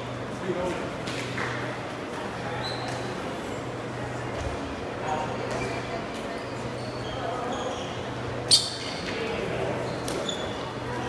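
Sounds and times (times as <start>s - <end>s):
short high squeak: 6.8s - 8.9s.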